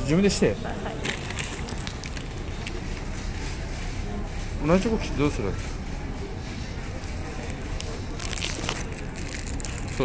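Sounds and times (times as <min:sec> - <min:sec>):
aluminium foil crinkling: 0:00.9 - 0:03.6, 0:07.3 - 0:10.0.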